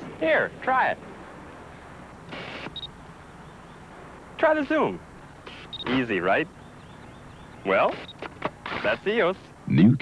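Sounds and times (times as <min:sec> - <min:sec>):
lens motor whirring: 0:02.3 - 0:02.9, 0:07.8 - 0:09.0.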